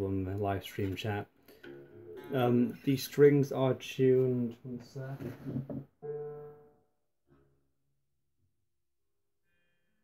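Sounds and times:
lute string plucked: 0:01.6 - 0:03.2, 0:05.6 - 0:07.6.

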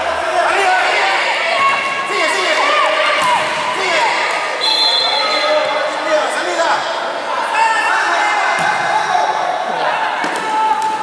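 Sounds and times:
people shouting: 0:00.0 - 0:05.7, 0:07.2 - 0:11.0
referee's whistle: 0:04.6 - 0:05.8.

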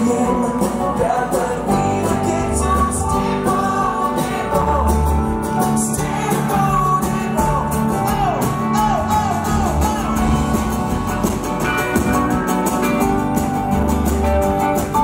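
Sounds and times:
pop-rock band playing: 0:00.0 - 0:15.0.

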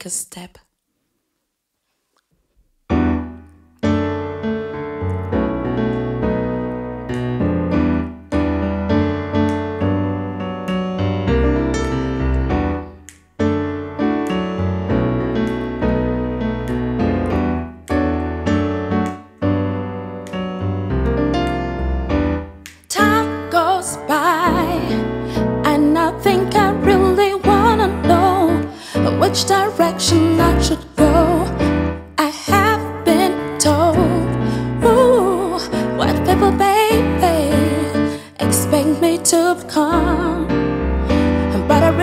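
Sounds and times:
deep piano bass line: 0:02.9 - 0:42.0
piano playing chords: 0:02.9 - 0:42.0.

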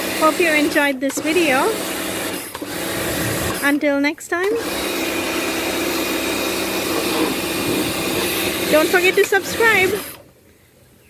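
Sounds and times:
pressure washer motor humming: 0:00.0 - 0:10.2
water jet hissing: 0:04.7 - 0:10.2.

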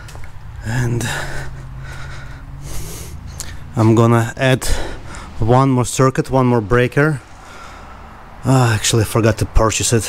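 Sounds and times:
breathing close to microphone: 0:00.9 - 0:03.8, 0:04.6 - 0:05.4, 0:07.2 - 0:08.4.

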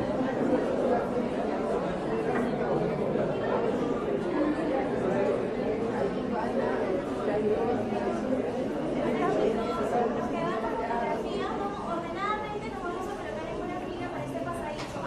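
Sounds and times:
babble of overlapping voices: 0:00.0 - 0:15.0.

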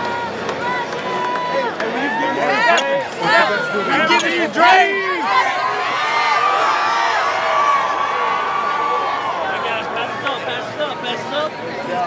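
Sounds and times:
crowd chattering and shouting: 0:00.0 - 0:12.0.

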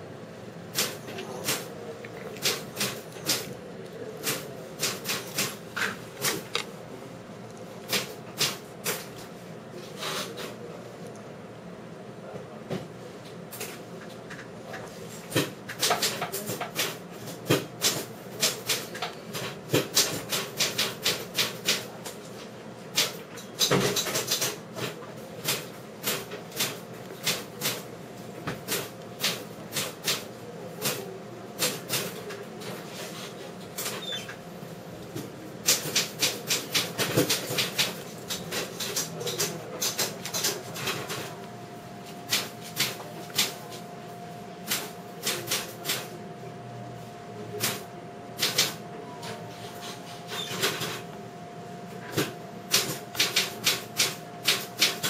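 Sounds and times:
typewriter-like clicking: 0:48.4 - 0:48.8.

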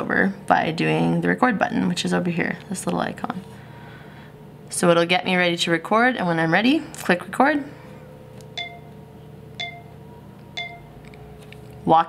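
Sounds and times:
short chime beeps: 0:08.6 - 0:08.9, 0:09.6 - 0:10.0, 0:10.6 - 0:10.9.

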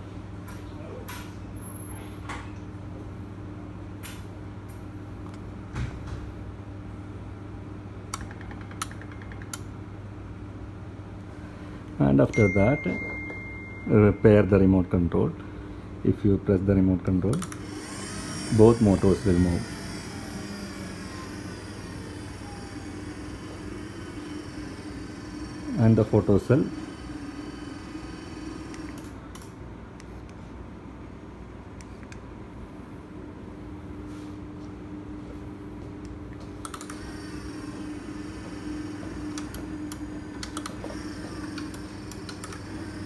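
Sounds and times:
steady low hum: 0:00.0 - 0:43.0
sliding gate motors humming: 0:17.2 - 0:29.8, 0:35.2 - 0:43.0.

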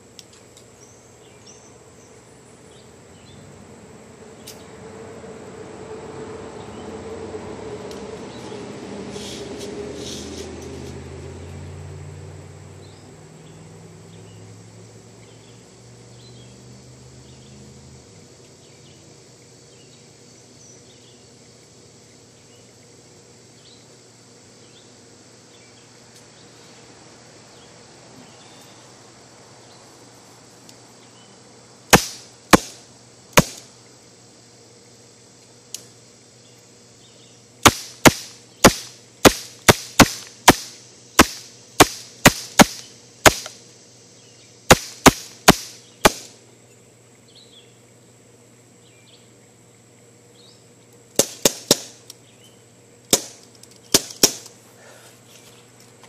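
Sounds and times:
pellet pistol shots: 0:31.9 - 0:32.8, 0:33.4 - 0:33.7, 0:37.6 - 0:43.6, 0:44.7 - 0:46.4, 0:51.2 - 0:52.0, 0:53.1 - 0:54.5.

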